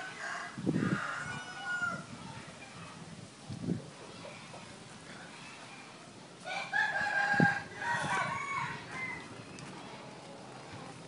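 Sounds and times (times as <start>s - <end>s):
rooster crowing: 0.0s - 2.0s, 6.4s - 9.4s.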